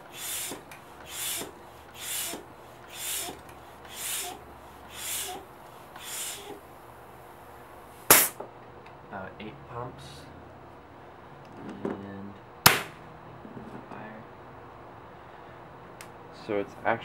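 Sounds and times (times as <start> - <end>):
bike pump hissing strokes: 0.0 - 6.6, 8.0 - 8.4.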